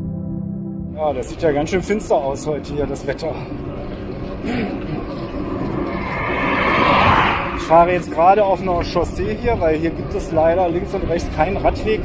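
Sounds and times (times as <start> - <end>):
vehicle approaching on road: 3.6 - 9.5.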